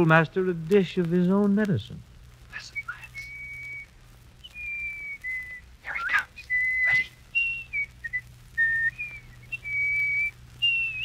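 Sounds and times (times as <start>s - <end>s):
person whistling a tune: 2.8s - 3.9s, 6.4s - 11.0s.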